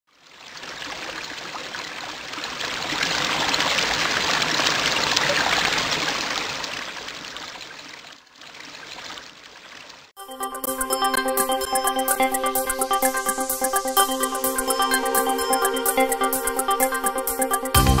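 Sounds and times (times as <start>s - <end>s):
rushing water: 0.1s - 10.1s.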